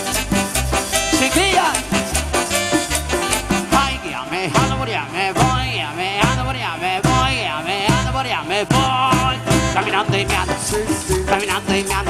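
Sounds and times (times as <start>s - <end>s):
latin dance band playing: 0.0s - 12.0s.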